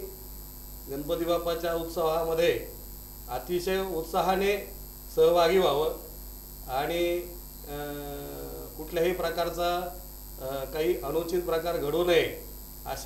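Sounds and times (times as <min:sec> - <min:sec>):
steady electrical hum: 0:00.0 - 0:13.0
man talking: 0:00.9 - 0:06.1, 0:06.7 - 0:13.0.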